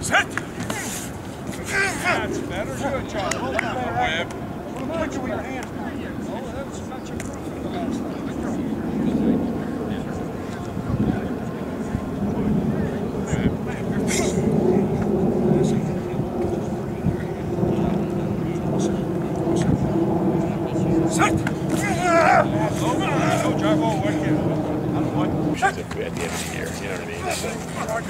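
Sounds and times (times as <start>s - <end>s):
low outdoor rumble: 0.0s - 28.0s
low hum: 8.0s - 28.0s
voice calling out: 21.2s - 23.6s.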